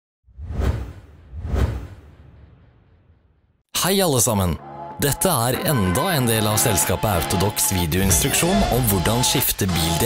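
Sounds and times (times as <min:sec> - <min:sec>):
whoosh sound effects: 0:00.3 - 0:03.1.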